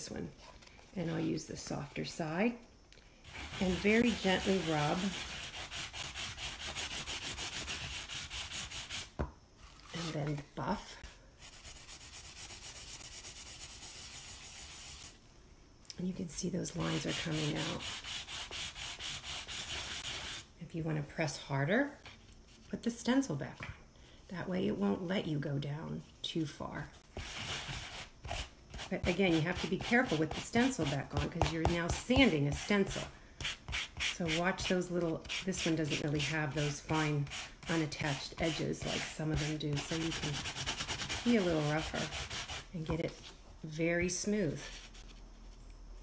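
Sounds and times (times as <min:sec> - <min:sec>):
sanding block rubbing on spackle: 0:03.3 - 0:09.1, 0:11.4 - 0:15.1, 0:16.8 - 0:20.5, 0:27.2 - 0:42.7.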